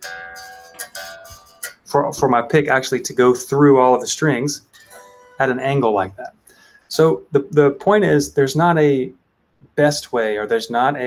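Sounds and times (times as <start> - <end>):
electric guitar strings strummed: 0.0 - 6.3.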